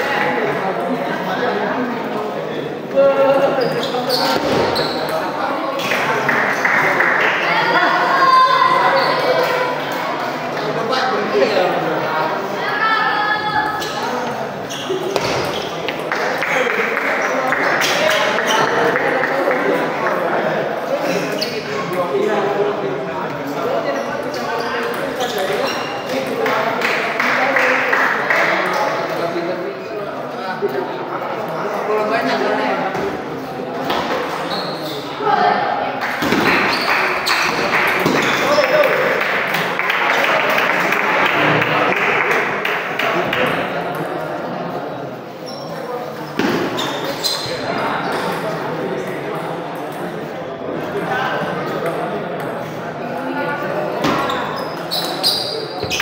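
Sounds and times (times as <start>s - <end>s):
voices chattering in echoing hall: 0.0s - 56.0s.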